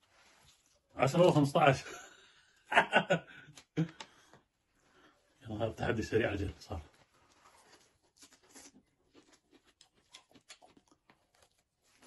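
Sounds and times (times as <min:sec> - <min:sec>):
close-up chewing: 0:07.0 - 0:12.0
bread being torn: 0:07.2 - 0:12.0.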